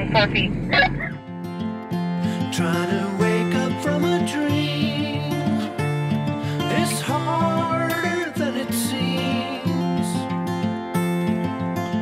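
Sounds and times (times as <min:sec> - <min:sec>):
guitar music: 0:00.0 - 0:12.0
person laughing: 0:00.7 - 0:01.2.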